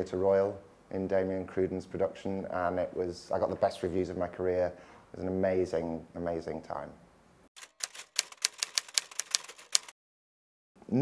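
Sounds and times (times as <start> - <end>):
typewriter keys clacking: 7.6 - 10.0.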